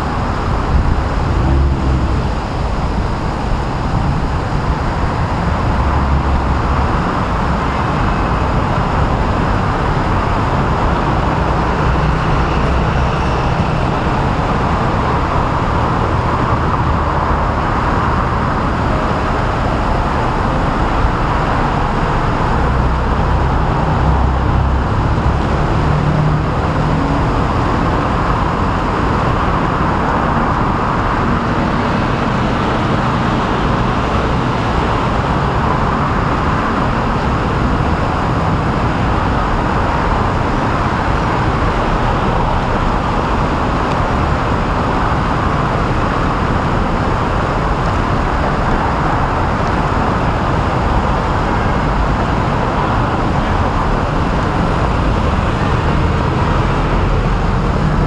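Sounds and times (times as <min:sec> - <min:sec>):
city road traffic rumble: 0:00.0 - 0:58.0.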